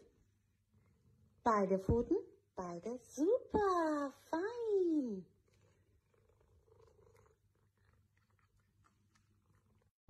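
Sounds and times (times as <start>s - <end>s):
cat purring: 0.0s - 1.5s, 5.3s - 9.9s.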